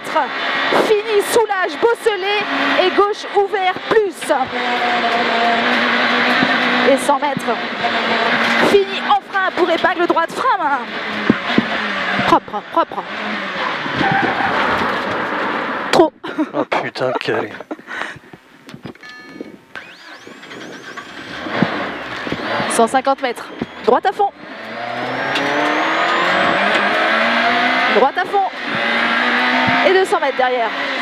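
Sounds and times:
rally car engine running hard: 0.0s - 16.0s, 19.8s - 31.0s
loud road noise: 0.0s - 31.0s.

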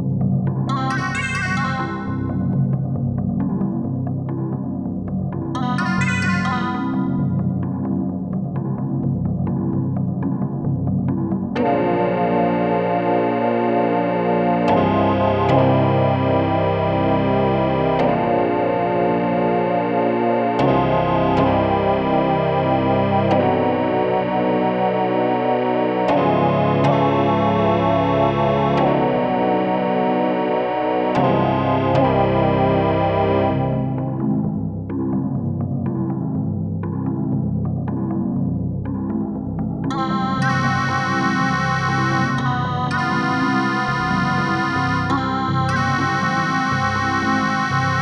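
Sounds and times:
synthesizer playing buzzy chords: 0.7s - 2.6s, 5.6s - 7.5s, 39.9s - 48.0s.

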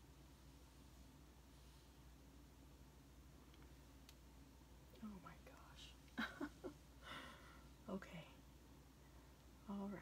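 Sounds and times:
faint click: 3.5s - 4.2s
quiet indistinct woman's voice: 4.9s - 6.6s, 7.8s - 8.5s, 9.6s - 10.0s.

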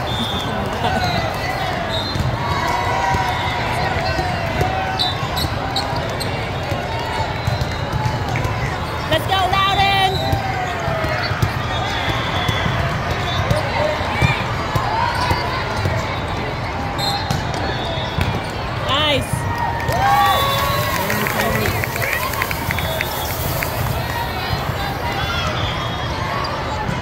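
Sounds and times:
volleyball hits: 0.0s - 16.5s
babble of voices and shouts: 0.0s - 27.0s.

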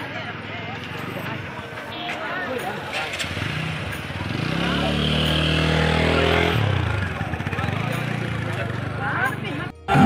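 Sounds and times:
motorcycle engine passing: 2.9s - 9.4s.

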